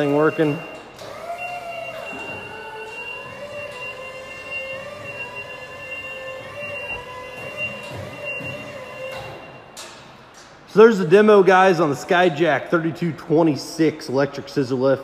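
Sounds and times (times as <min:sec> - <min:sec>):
steady high tone: 0:00.0 - 0:09.7
scissor lift electric drive whining: 0:00.0 - 0:10.2.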